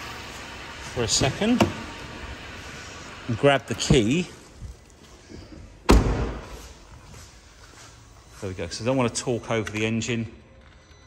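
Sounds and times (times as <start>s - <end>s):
car door shutting: 1.1s - 2.0s, 5.8s - 6.6s.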